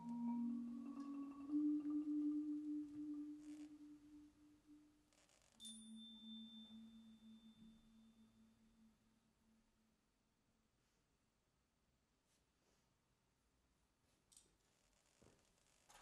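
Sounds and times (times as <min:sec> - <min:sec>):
marimba and vibraphone notes: 0:00.0 - 0:04.0.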